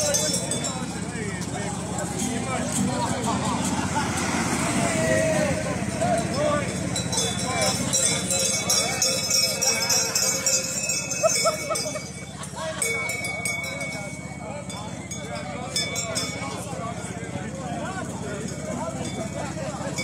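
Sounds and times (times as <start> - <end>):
people talking: 0.0 - 20.0.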